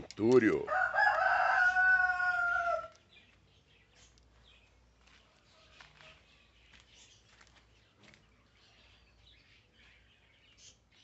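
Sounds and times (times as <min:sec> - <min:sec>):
rooster crowing: 0:00.7 - 0:03.0.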